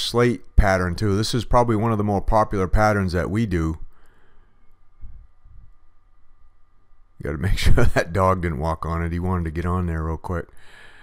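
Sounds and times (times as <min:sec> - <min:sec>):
faint low rumble: 0:00.0 - 0:10.6.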